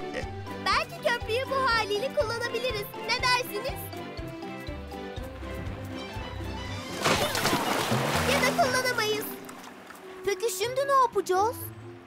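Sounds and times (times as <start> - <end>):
music playing: 0.0 - 12.0
water splashing: 6.2 - 10.2
wooden planks crashing: 7.0 - 8.6.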